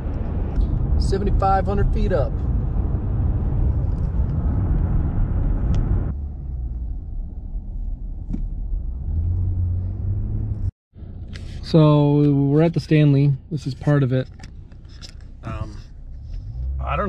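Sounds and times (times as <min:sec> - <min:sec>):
car cabin road and engine rumble: 0:00.0 - 0:17.0.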